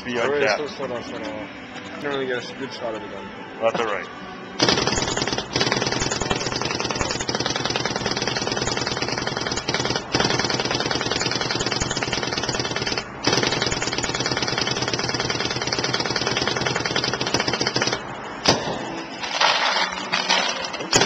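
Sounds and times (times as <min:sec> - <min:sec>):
paintball marker rapid firing: 0:04.6 - 0:18.7.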